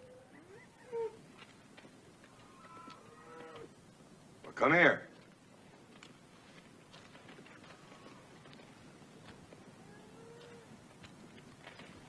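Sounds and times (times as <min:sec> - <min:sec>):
cattle lowing: 0:00.0 - 0:03.8, 0:06.0 - 0:12.0.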